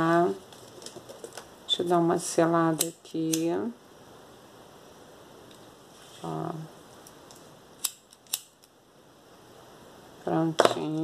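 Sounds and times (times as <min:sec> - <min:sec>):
lighter clicking: 0:07.8 - 0:08.7.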